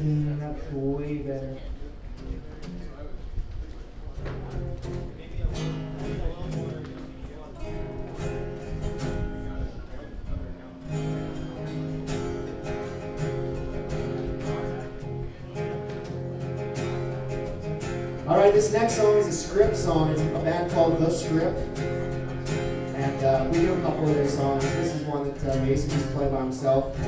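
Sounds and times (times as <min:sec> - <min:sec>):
acoustic guitars strumming: 0:04.0 - 0:27.0.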